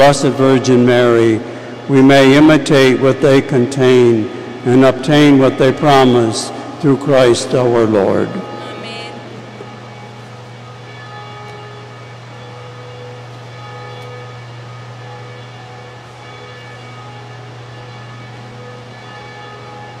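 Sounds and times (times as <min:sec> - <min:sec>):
faint sustained tones: 0:00.0 - 0:20.0
low hum: 0:00.0 - 0:20.0.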